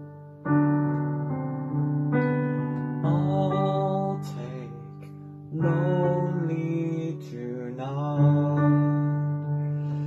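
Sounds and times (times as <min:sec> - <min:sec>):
electronic keyboard chords: 0:00.0 - 0:10.0.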